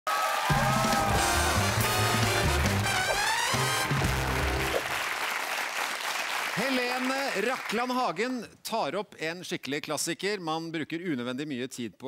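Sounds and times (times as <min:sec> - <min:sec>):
audience applause: 0:00.1 - 0:07.8
show theme tune: 0:00.5 - 0:05.2.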